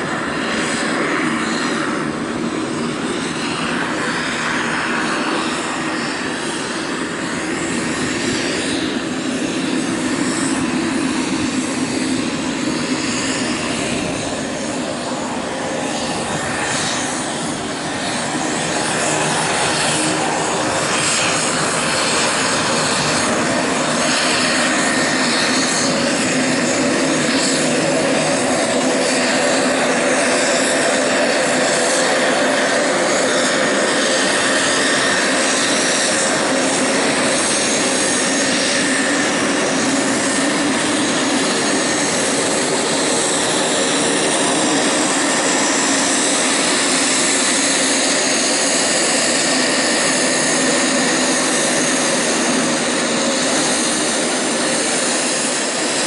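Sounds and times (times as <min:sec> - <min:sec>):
turboprop plane taxiing: 0:00.0 - 0:56.0.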